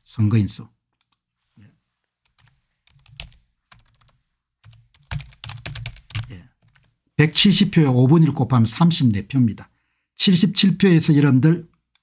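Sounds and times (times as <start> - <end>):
typing on computer keyboard: 2.3 - 7.0.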